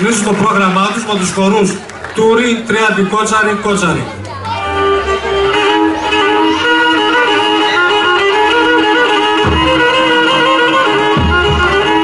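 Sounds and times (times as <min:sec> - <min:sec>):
bowed lyra folk melody: 0:04.2 - 0:12.0
drum beats: 0:04.4 - 0:12.0.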